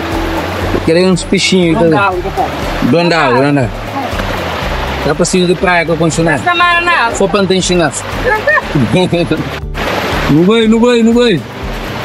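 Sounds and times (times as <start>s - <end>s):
background music with sung vocals: 0.0s - 12.0s.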